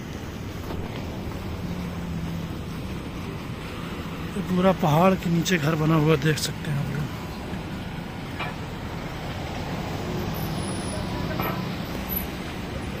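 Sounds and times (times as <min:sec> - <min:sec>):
road traffic hum: 0:00.0 - 0:13.0.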